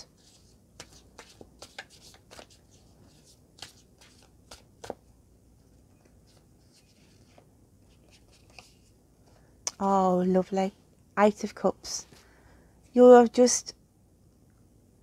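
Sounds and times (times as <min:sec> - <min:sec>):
cards being shuffled: 0:00.1 - 0:05.0, 0:06.0 - 0:08.9.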